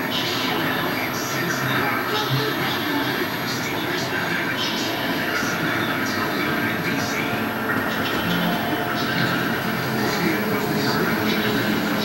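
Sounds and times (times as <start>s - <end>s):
dense background noise: 0.0s - 12.0s
television voices overlapping: 0.0s - 12.0s.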